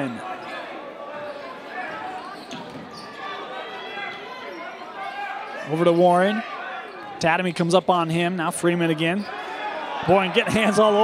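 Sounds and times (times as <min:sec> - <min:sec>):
murmur of crowd voices: 0:00.0 - 0:11.0.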